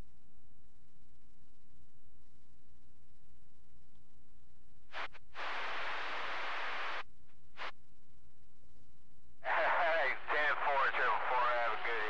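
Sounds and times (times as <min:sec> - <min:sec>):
radio static hiss: 0:04.9 - 0:07.7, 0:09.4 - 0:12.0.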